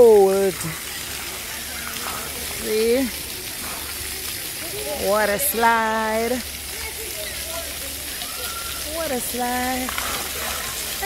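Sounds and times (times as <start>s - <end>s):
spray splattering on wet ground: 0.0s - 11.0s
water jets spraying: 0.0s - 11.0s.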